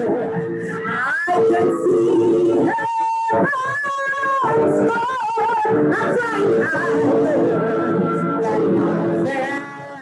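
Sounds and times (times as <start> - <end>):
woman singing gospel: 0.9 - 10.0.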